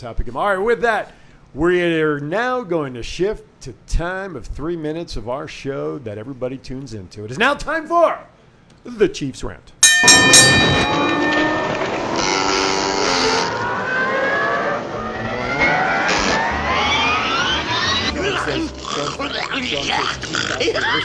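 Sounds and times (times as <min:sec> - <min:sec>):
ringing bell-like hit: 0:09.8 - 0:12.6
long rising whine: 0:10.1 - 0:18.5.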